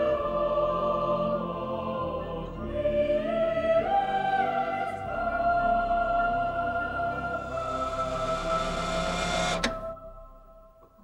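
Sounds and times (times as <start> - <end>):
choir holding a chord: 0.0 - 10.7.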